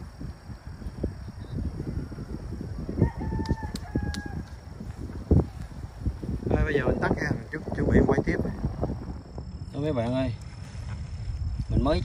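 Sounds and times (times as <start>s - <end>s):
low rumble on microphone: 0.0s - 12.0s
rooster crowing: 1.8s - 4.6s.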